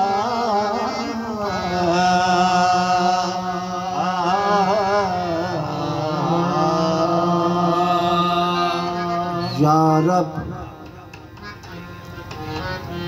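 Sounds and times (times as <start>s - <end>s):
men singing: 0.0s - 11.0s
harmonium chords: 0.0s - 13.0s.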